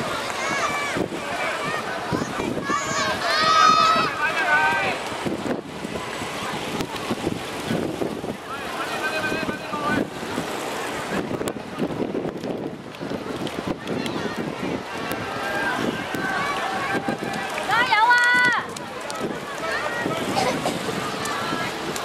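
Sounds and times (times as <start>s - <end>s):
spectators calling out: 0.0s - 5.1s, 14.2s - 22.0s
loud high-pitched shout: 2.6s - 4.2s.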